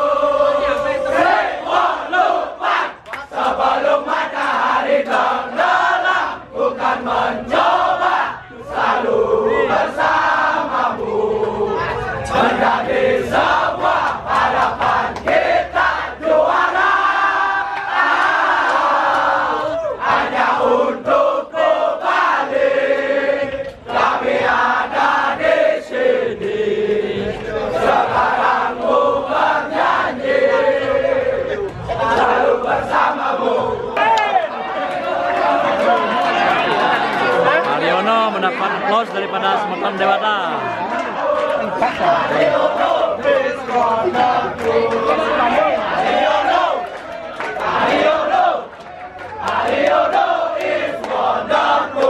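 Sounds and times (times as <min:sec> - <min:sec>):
crowd chanting and singing: 0:00.0 - 0:52.0.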